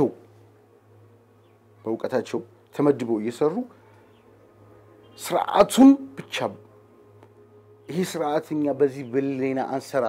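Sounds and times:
man speaking: 0.0 - 0.3, 1.8 - 3.8, 5.1 - 6.7, 7.9 - 10.0
steady low hum: 0.0 - 10.0.

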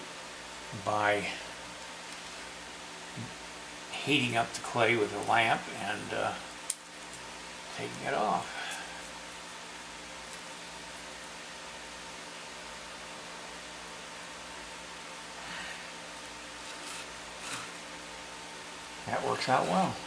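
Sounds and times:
background hum and hiss: 0.0 - 20.0.

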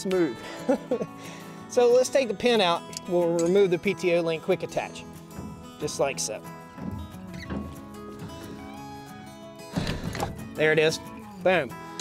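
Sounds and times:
music with held notes: 0.0 - 12.0.

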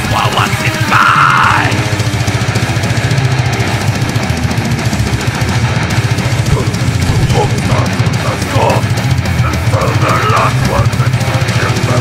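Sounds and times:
distorted guitars: 0.0 - 12.0
fast dense drumming: 0.0 - 12.0.

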